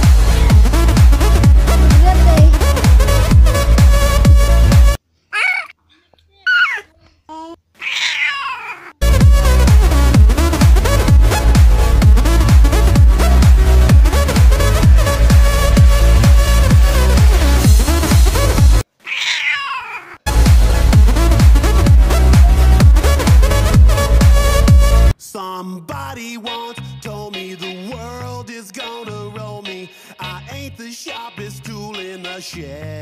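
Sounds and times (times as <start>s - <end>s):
background music: 0.0s - 5.0s, 9.0s - 18.8s, 20.3s - 25.2s, 25.8s - 33.0s
high-pitched vocal cries: 5.3s - 9.0s, 19.0s - 20.2s
cat meowing: 7.8s - 9.0s, 19.0s - 20.2s.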